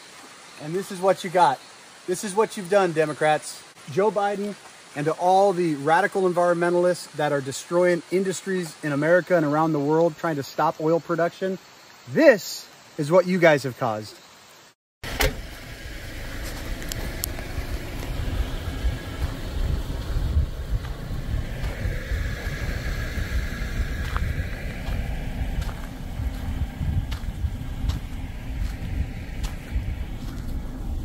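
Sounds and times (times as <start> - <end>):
wind buffeting microphone: 16.8 - 31.0.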